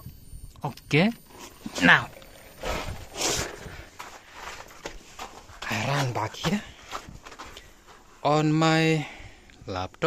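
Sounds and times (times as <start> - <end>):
rustling scuffs of movement: 2.6 - 8.3.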